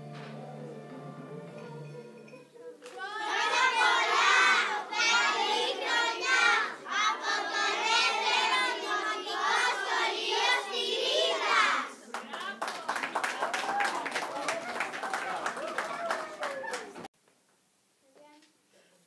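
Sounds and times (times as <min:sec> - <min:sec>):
hand clapping: 0:02.8 - 0:03.0, 0:12.2 - 0:17.1
children singing in unison: 0:03.0 - 0:11.9.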